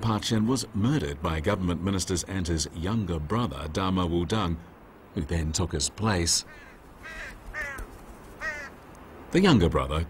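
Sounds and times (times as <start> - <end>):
crow cawing: 6.4 - 8.8.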